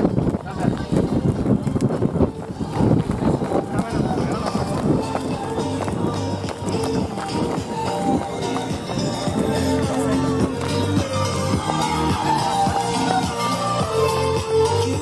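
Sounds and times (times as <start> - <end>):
running footsteps in boots: 0.0 - 15.0
music with held notes: 1.2 - 15.0
voices shouting: 3.9 - 15.0.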